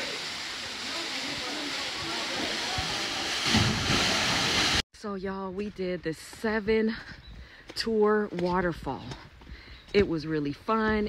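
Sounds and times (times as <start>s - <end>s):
waterfall rushing: 0.0s - 4.8s.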